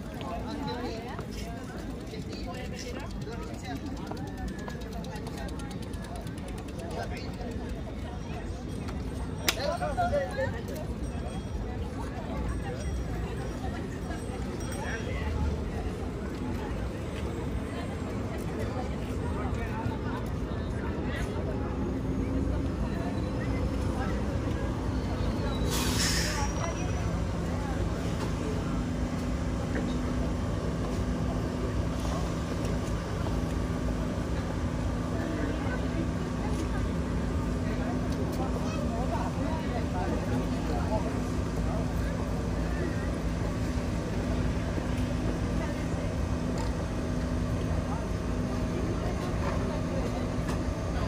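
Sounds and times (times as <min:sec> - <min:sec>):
ferry engines idling: 0:00.0 - 0:51.0
passers-by talking: 0:00.0 - 0:51.0
short hiss: 0:25.7 - 0:26.4.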